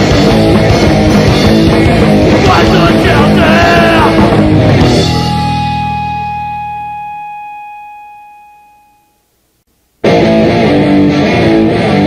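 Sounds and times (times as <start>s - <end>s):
electric guitar note ringing: 0.0s - 12.0s.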